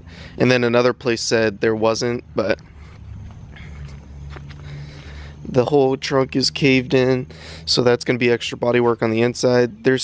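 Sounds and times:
low steady rumble: 0:00.0 - 0:10.0
footsteps on brick pavers: 0:01.3 - 0:05.8.

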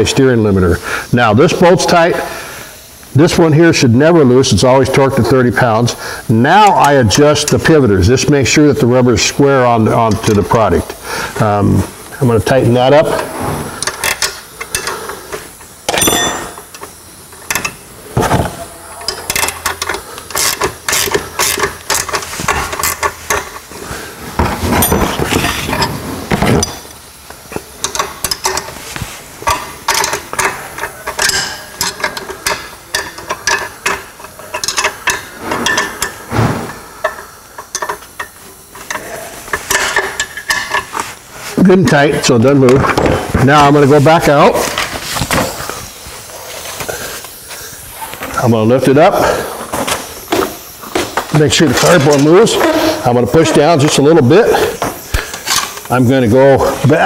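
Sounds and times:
wrenches clinking on metal: 0:13.8 - 0:23.7, 0:24.4 - 0:26.9, 0:27.5 - 0:28.8, 0:29.4 - 0:36.2, 0:37.0 - 0:41.1, 0:50.9 - 0:57.0.

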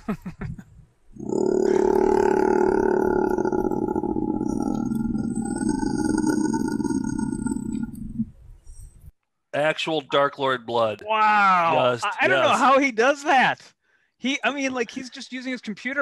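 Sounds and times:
man laughing: 0:00.0 - 0:00.8
man growling in demonic voice: 0:01.2 - 0:07.9.

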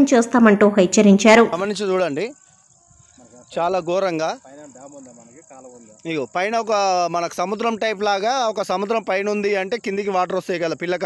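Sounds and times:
high-pitched insect trill: 0:00.9 - 0:11.0.

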